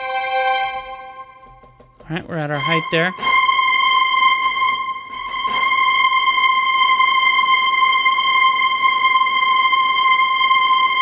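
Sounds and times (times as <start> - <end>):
string ensemble holding high note: 0.0 - 11.0.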